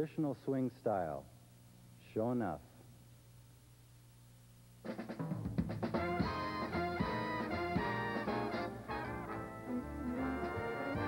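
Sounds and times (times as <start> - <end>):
faint low hum: 0.0 - 11.0
jazz drum kit strikes: 4.8 - 11.0
swing big band music: 4.9 - 11.0.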